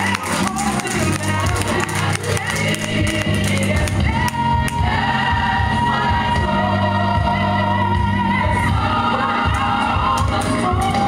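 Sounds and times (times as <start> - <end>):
steady bass line: 0.0 - 11.0.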